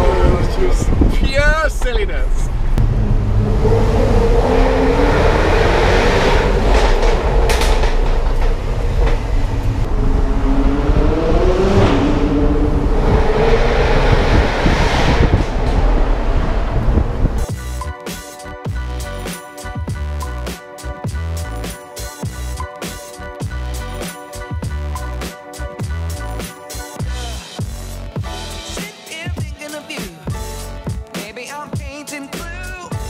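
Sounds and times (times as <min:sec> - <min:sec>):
road rumble: 0:00.0 - 0:28.8
car engine revving: 0:02.5 - 0:17.5.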